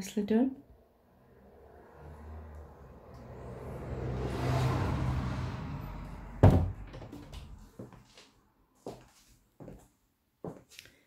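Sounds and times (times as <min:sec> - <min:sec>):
road vehicle passing: 0:00.6 - 0:08.7.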